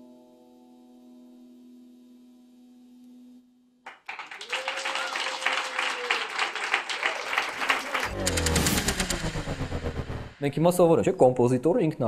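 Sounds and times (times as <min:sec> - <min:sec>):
applause: 0:03.8 - 0:08.8
title sting with deep bass hits: 0:08.0 - 0:11.2.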